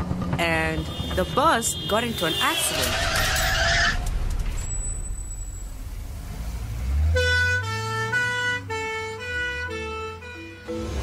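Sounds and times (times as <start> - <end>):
thin high ringing tone: 4.5 - 5.9.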